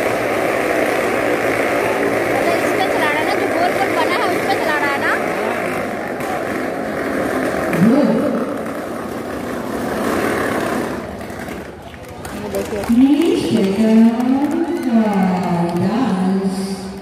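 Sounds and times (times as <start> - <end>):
crowd chatter and shouts: 0.0 - 17.0
motorcycle engines droning: 0.0 - 17.0.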